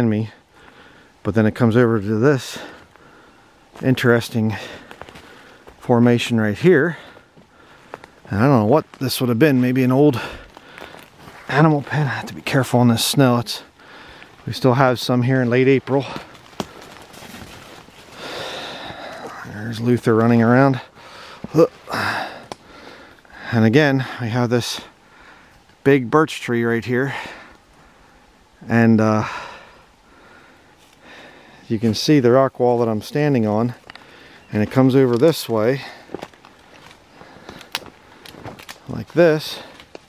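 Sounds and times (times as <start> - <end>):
person breathing out heavily: 0.4 - 1.2, 2.5 - 3.7, 4.5 - 5.8, 6.9 - 8.3, 10.2 - 11.5, 13.6 - 14.4, 18.1 - 19.5, 20.9 - 24.2, 25.0 - 25.6, 29.2 - 31.7, 34.0 - 34.5
faint rustling: 2.5 - 23.2, 30.1 - 40.0
footsteps on dry leaves and stones: 3.7 - 23.1, 31.8 - 40.0.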